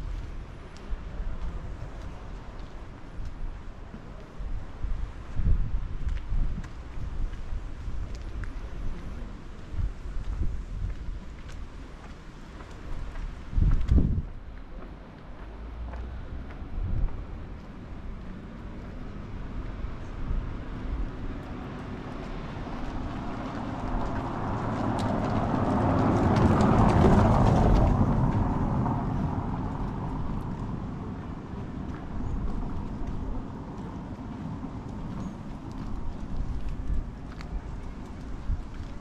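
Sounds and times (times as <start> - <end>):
tyres rumbling on cobbles: 20.5 - 39.0.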